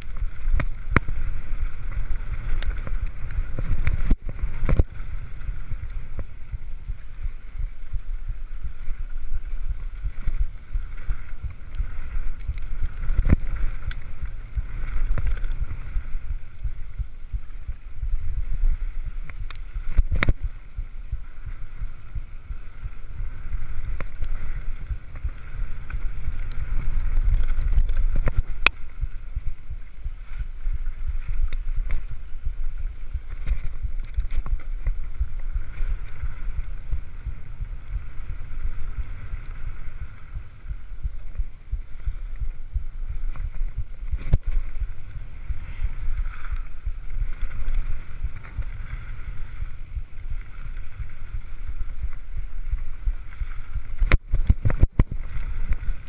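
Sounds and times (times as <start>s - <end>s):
bike clicks and rattles: 0.0s - 56.0s
bike tyre noise on dirt: 0.0s - 56.0s
wind rumble on microphone: 0.0s - 56.0s.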